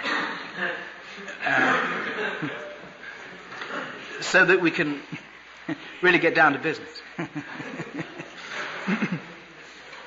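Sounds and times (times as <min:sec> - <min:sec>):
audience laughing: 0:07.1 - 0:09.4.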